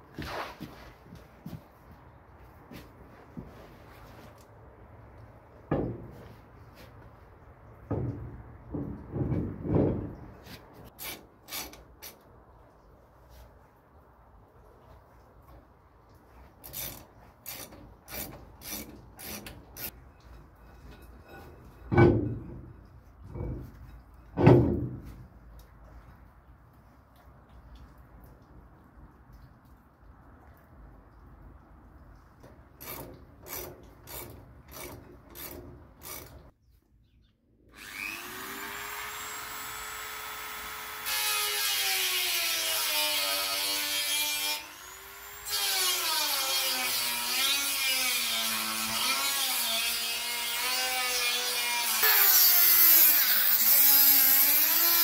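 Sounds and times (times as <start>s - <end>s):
heavy knocks: 7.9s - 10.3s
power tool running: 37.8s - 42.7s.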